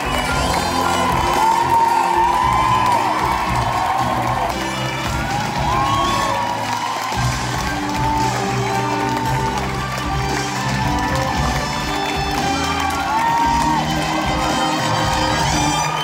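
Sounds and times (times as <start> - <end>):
audience cheering and whooping: 0.0 - 16.0
music: 0.0 - 16.0.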